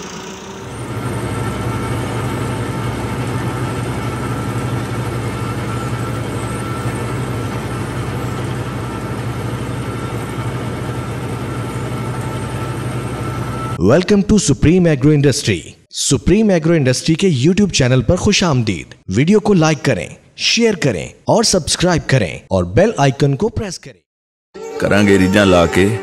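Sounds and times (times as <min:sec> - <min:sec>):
high machine whine: 0:00.0 - 0:13.8
tractor engine under load: 0:00.0 - 0:13.8.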